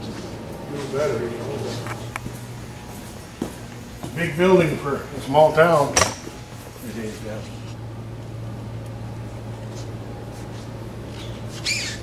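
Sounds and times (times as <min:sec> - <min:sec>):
steady low hum: 0:00.0 - 0:12.0
short high squeak: 0:11.2 - 0:12.0.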